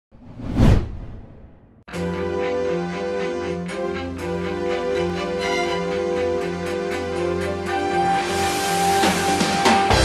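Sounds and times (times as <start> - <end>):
whoosh sound effect: 0.2 - 1.7
music: 1.9 - 10.0.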